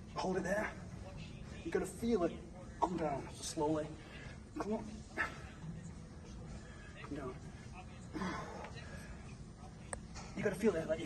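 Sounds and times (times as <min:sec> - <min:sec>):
faint low hum of breath: 0:02.5 - 0:10.4.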